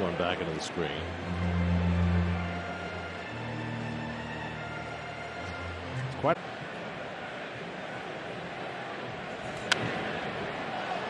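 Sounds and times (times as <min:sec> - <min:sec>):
ballpark crowd murmur: 0:00.0 - 0:11.0.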